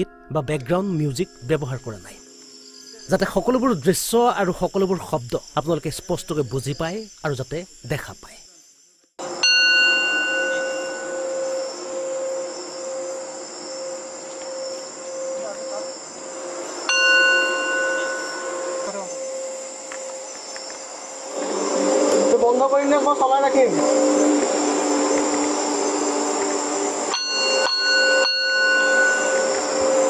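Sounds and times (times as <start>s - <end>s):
crickets chirping: 0.0s - 30.0s
singing bowl struck: 9.2s - 12.5s, 16.9s - 19.5s, 27.1s - 30.0s
singing bowl rim tone: 9.2s - 16.1s, 16.8s - 20.8s, 27.1s - 30.0s.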